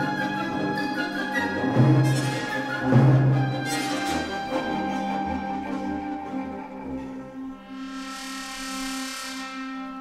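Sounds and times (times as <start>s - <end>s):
high shimmering wash: 7.4s - 10.0s.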